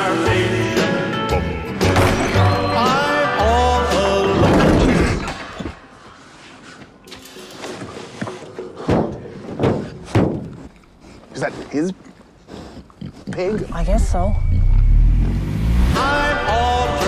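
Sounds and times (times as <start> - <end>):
tense horror trailer score: 13.7 - 16.8.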